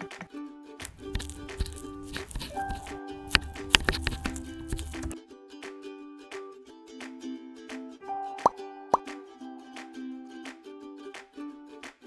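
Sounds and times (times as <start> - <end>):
plucked-string background music: 0.0 - 12.0.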